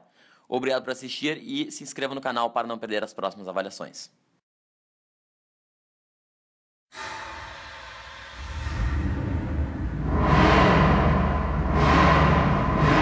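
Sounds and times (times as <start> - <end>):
low rumble: 7.9 - 13.0
rising whooshes: 7.9 - 13.0.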